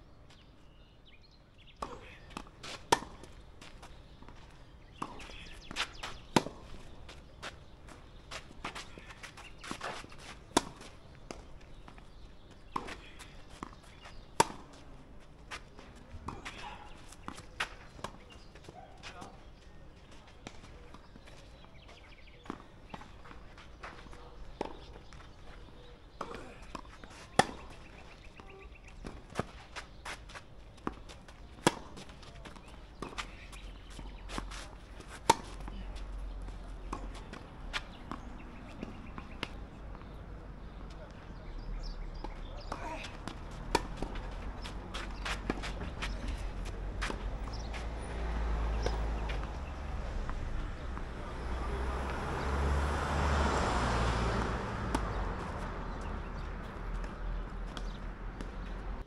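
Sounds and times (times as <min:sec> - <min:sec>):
tennis balls struck by rackets: 0:01.8 - 0:52.7, 0:54.0 - 0:59.0
footsteps on clay: 0:01.8 - 0:59.0.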